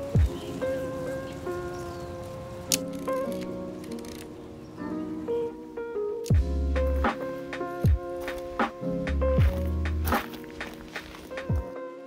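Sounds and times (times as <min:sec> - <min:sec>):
held chords over a beat: 0:00.0 - 0:01.8, 0:04.8 - 0:11.9.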